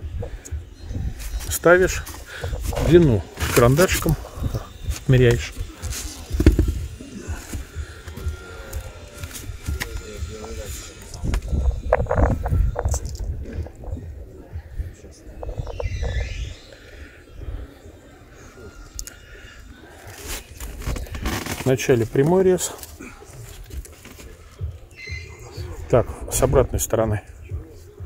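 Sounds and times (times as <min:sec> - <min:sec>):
wind rumble on microphone: 0:00.0 - 0:03.4, 0:04.1 - 0:05.7, 0:11.1 - 0:16.4
handling noise: 0:01.3 - 0:14.0.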